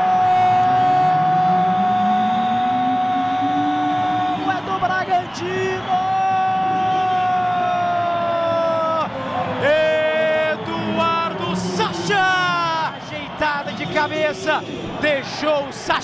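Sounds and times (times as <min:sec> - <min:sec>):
stadium crowd noise: 0:00.0 - 0:16.0
commentator shouting: 0:09.6 - 0:16.0.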